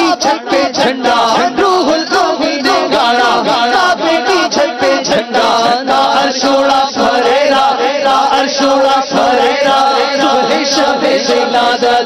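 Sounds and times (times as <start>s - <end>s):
men chanting devotional song: 0.0s - 12.0s.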